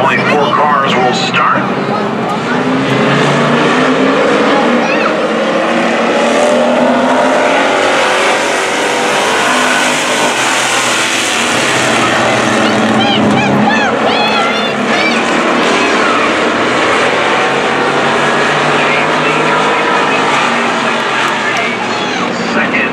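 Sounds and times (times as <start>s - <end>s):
race car engines: 0.0s - 22.9s.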